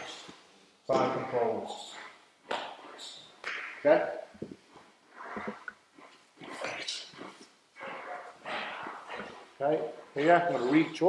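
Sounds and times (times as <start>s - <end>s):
breathy exhalations: 4.7s - 11.0s.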